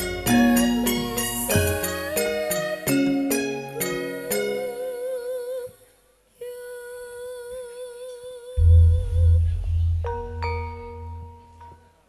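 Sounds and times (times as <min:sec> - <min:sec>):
held note with wavering vibrato: 0:08.6 - 0:11.9.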